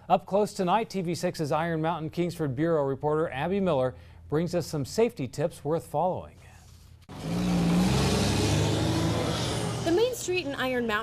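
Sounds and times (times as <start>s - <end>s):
heavy vehicle engine running: 7.1s - 10.8s
road traffic noise: 7.1s - 11.0s.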